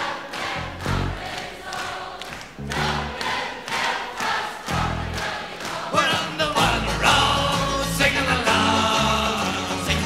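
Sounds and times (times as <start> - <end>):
crowd singing together: 0.0 - 10.0
folk ballad band music: 6.1 - 10.0.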